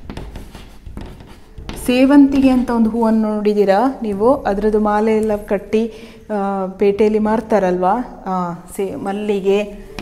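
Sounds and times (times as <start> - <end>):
chalk scratching on blackboard: 0.0 - 3.3, 9.6 - 10.0
woman speaking: 1.7 - 10.0.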